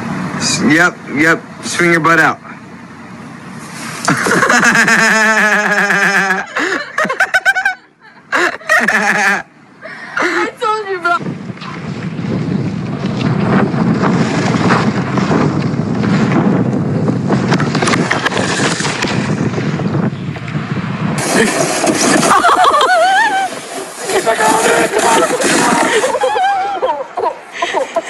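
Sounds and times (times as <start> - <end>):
wind on microphone: 11.0 - 26.9.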